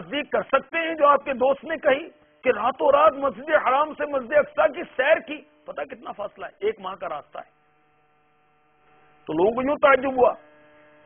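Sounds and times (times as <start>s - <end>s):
man speaking: 0.0s - 7.5s, 9.3s - 10.4s
faint electrical hum: 0.0s - 11.0s.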